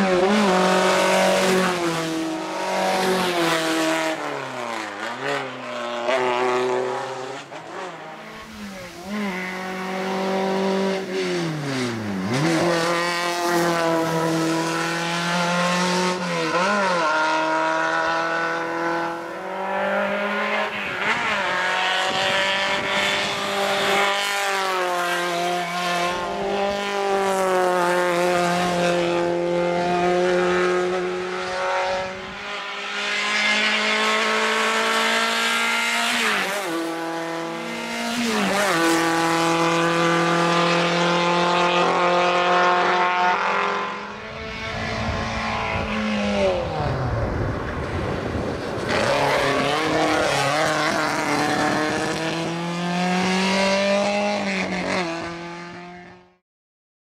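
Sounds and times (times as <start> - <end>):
race car engine revving: 0.0 - 56.2.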